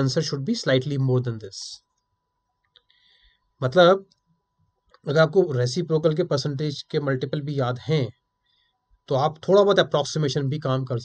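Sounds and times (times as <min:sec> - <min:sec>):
man speaking: 0:00.0 - 0:01.8, 0:03.6 - 0:04.0, 0:05.0 - 0:08.1, 0:09.1 - 0:11.0.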